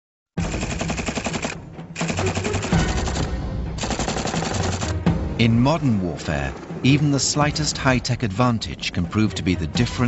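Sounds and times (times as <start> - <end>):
machine gun firing bursts: 0.4 - 5.0.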